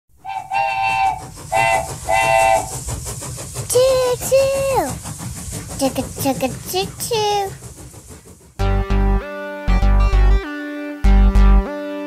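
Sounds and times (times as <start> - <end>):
train running noise: 0.1 - 10.4
steam train whistle blasts: 0.2 - 2.7.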